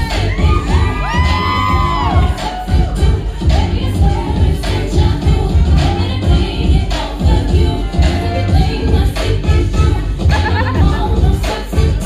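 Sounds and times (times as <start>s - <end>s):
audience whoops and cheers: 0.0s - 3.0s
dance music with heavy bass beat: 0.0s - 12.0s.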